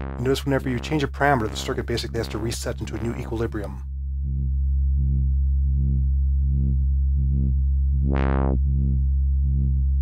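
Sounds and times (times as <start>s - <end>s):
synthesizer drone: 0.0s - 10.0s.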